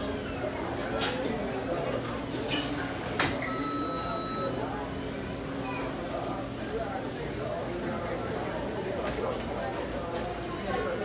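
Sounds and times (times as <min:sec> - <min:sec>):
faint talk: 0:00.0 - 0:11.0
steady electronic beep: 0:03.4 - 0:04.5.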